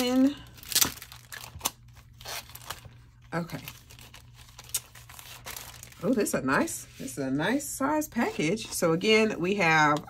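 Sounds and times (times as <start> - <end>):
plastic sleeve crinkling: 0.0 - 6.7.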